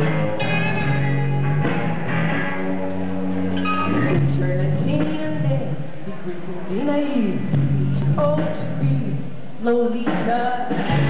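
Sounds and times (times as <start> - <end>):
rock band playing ringing chords: 0.0 - 5.1.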